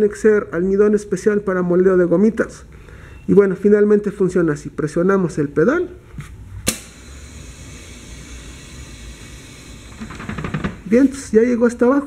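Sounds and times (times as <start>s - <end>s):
press hissing and humming: 6.6s - 11.2s.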